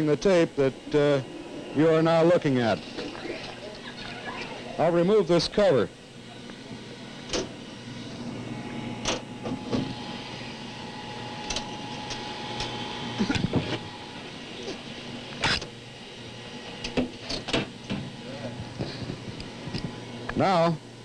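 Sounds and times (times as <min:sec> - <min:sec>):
machine humming: 0:00.0 - 0:21.0.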